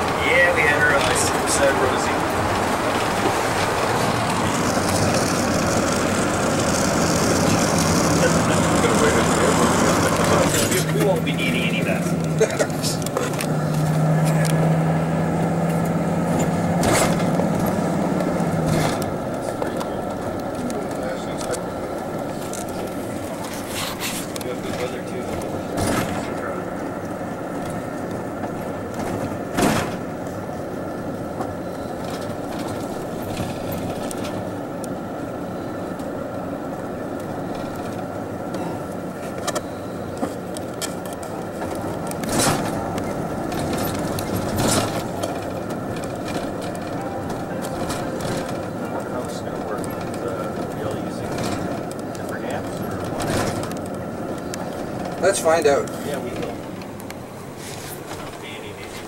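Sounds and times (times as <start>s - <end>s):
road and engine noise in cabin: 0.0s - 59.0s.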